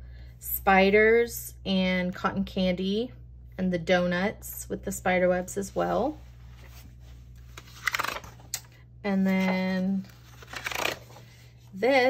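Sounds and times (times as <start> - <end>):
paper pages rustling: 6.5 - 8.5, 9.3 - 11.6.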